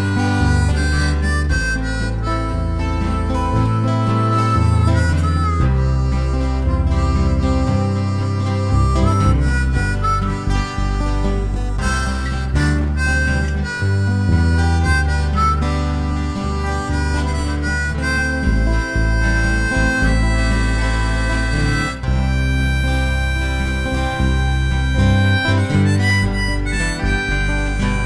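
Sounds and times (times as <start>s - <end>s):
bass line: 0.0s - 28.0s
guitar: 0.0s - 28.0s
harmonica melody: 0.0s - 28.0s.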